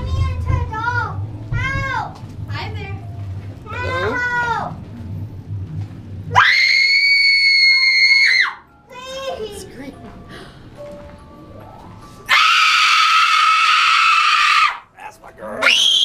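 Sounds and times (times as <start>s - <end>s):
high-pitched screaming and shrieks: 6.3s - 8.6s, 12.3s - 14.8s, 15.6s - 16.0s.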